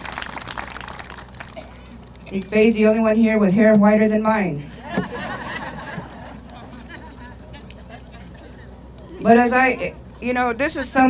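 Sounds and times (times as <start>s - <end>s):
audience applauding: 0.0s - 2.0s.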